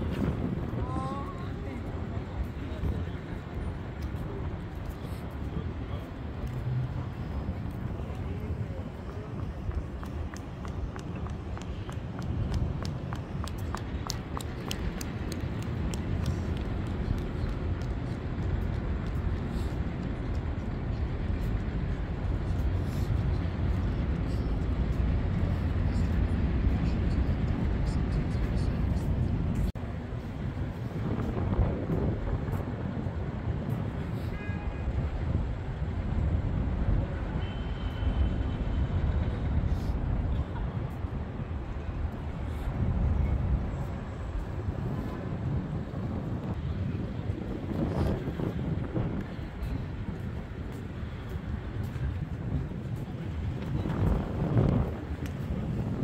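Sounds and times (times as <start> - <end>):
faint voices of passers-by: 0.0 - 56.0
road traffic rumble: 0.0 - 56.0
footsteps on paving: 7.7 - 19.3.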